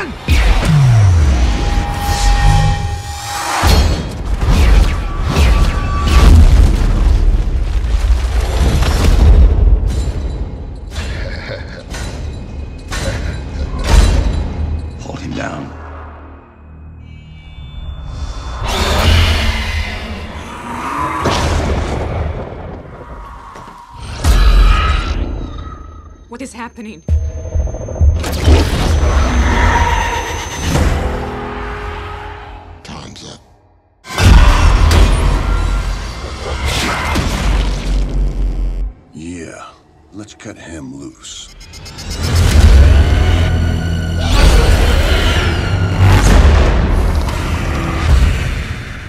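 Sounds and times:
cinematic score: 0.0 - 49.0.

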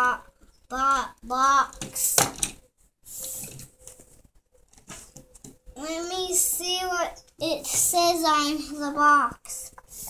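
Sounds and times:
rustling and handling noises: 1.6 - 5.8.

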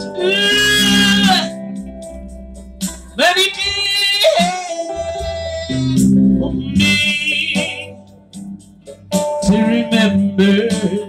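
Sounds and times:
person singing wordless line: 0.0 - 1.8, 2.9 - 8.0, 9.4 - 11.0.

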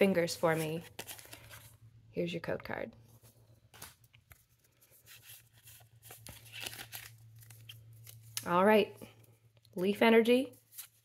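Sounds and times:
foil wrapper tearing and rustling: 5.0 - 8.4.

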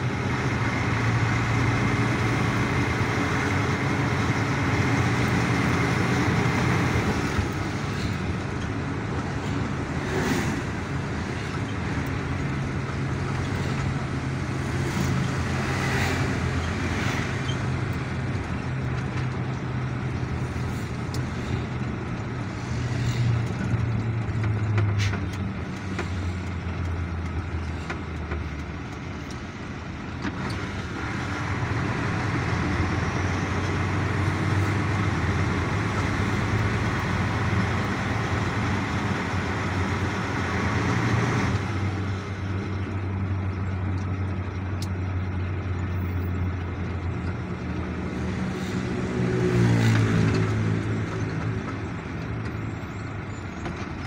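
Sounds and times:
road noise: 0.0 - 54.0
vehicle engine drone: 0.0 - 54.0.

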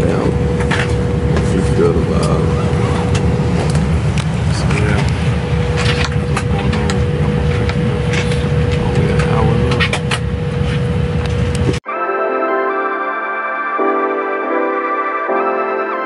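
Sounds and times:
airliner cabin rumble and whine: 0.0 - 11.8
keyboard music: 11.8 - 16.0.

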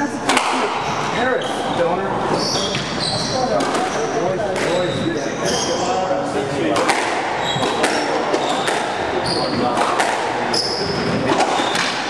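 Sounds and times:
murmur of people talking: 0.0 - 12.0
shoes squeaking on wooden floor: 0.6 - 6.1, 7.4 - 12.0
squash ball cracks: 6.8 - 9.0, 9.7 - 10.5.

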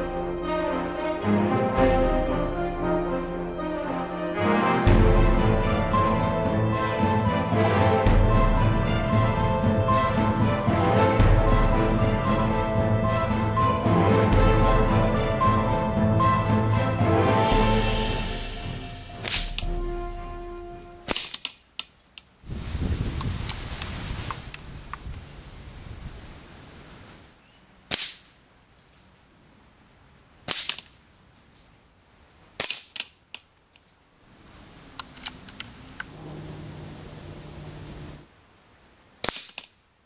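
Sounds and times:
background music: 0.0 - 21.4.

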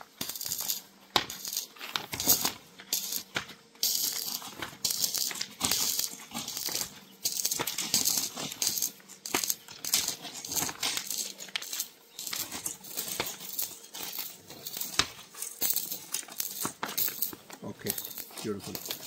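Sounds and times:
sharp plastic crackles: 0.1 - 19.0
plastic film crinkling: 0.2 - 19.0.

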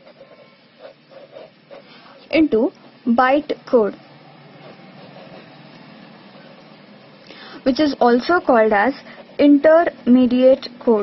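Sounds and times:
steady hiss: 0.0 - 10.9.

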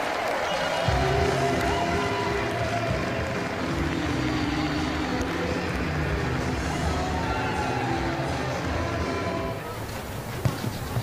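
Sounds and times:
crowd noise and voices: 0.0 - 11.0
stadium music: 0.0 - 11.0.

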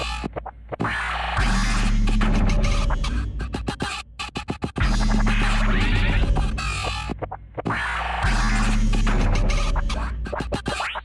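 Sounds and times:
electronic club music: 0.0 - 11.0.

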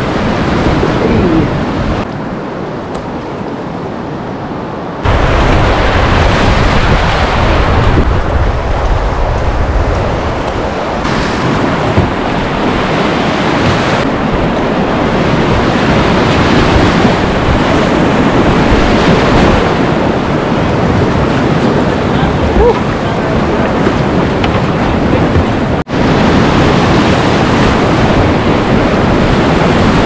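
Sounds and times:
river whitewater rushing: 3.3 - 30.0.

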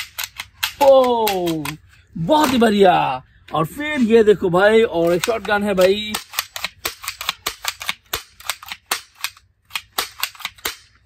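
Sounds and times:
toy gun firing sharp cracks: 0.0 - 1.8, 5.0 - 11.0.

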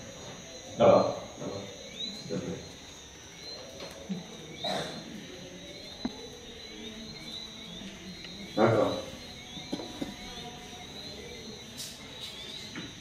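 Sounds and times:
faint voices: 0.0 - 13.0
high-pitched chirping chorus: 0.0 - 13.0.

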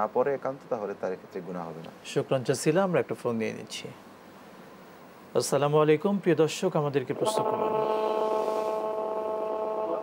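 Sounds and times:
faint hiss: 0.0 - 10.0
steady electronic tone: 7.1 - 10.0.

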